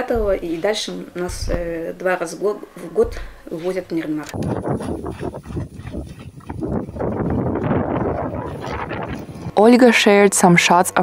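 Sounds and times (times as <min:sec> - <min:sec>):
hooves thudding in grass: 0:00.1 - 0:01.9, 0:02.9 - 0:09.4
sled runners dragging through grass: 0:03.2 - 0:09.6.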